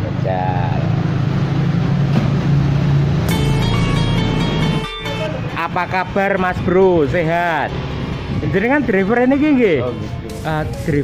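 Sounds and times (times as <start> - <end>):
sustained steady tone: 3.3 - 8.4.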